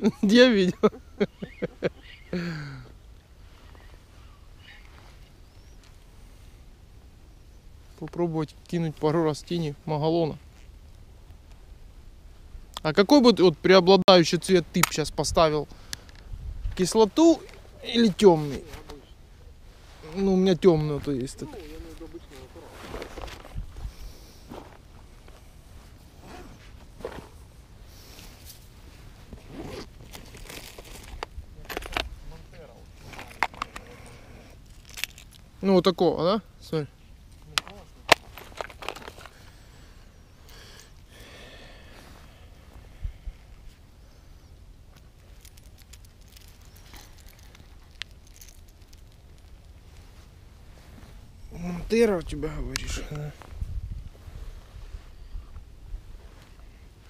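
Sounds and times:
rasping zipper pulls: 29.4 - 29.9.

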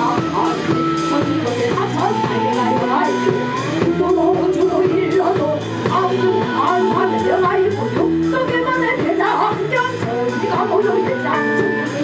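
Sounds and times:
drum beat: 0.0 - 12.0
pop song with singing: 0.0 - 12.0.

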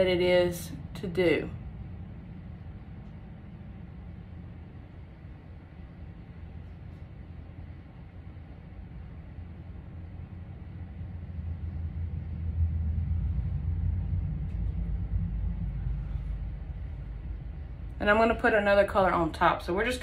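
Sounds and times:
low steady rumble: 0.0 - 20.0.

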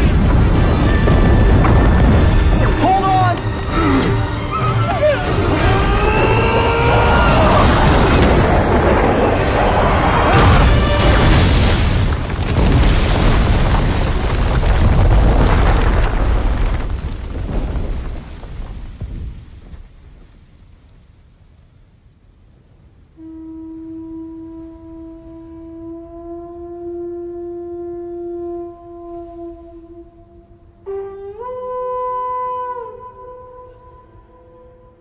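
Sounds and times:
rumbling crash of collapsing rock: 0.0 - 2.9, 5.4 - 20.6
shell horn long note: 23.2 - 35.0.

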